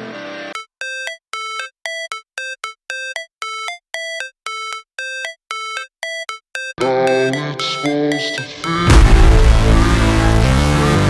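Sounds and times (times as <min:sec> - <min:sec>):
electronic chime melody: 0:00.5 - 0:09.4
loud rock music: 0:08.8 - 0:11.0.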